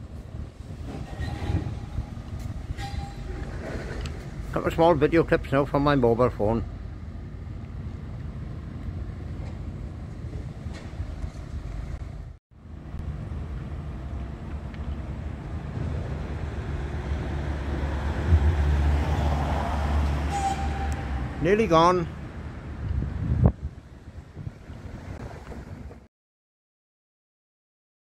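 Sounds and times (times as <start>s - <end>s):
street traffic: 0.0s - 26.1s
vehicle passing close: 14.6s - 21.6s.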